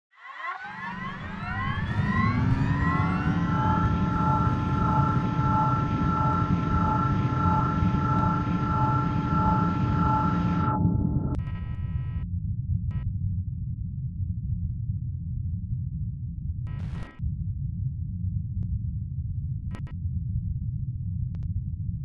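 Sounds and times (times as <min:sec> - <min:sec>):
rising engine whine: 0:00.1 - 0:11.9
low rumble: 0:00.6 - 0:22.0.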